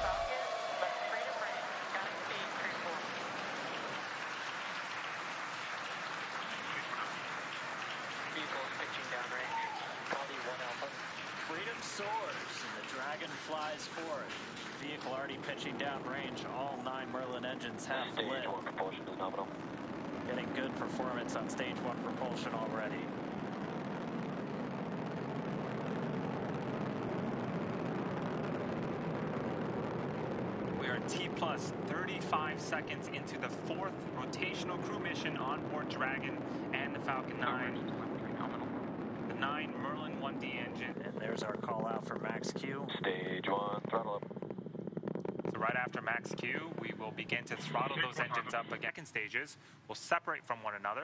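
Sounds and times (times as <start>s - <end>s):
rocket engines crackling: 0.0s - 51.0s.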